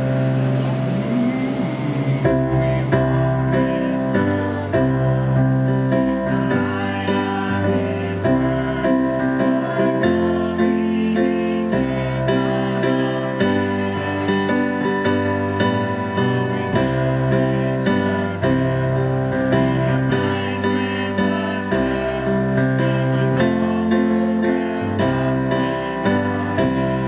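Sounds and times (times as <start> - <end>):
tone gliding upward: 0.0 - 4.2
bass line: 0.0 - 27.0
keyboard sustained low note: 0.0 - 27.0.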